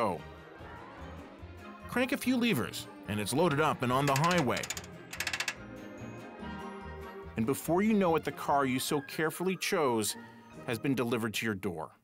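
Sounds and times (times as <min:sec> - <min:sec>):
background music: 0:00.0 - 0:11.9
ratchet clicking rapidly: 0:04.0 - 0:05.6.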